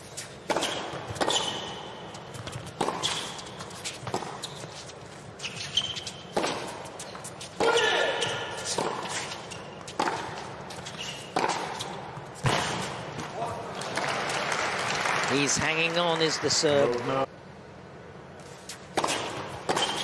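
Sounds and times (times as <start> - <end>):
racket hitting tennis ball: 0.0 - 13.4, 18.5 - 20.0.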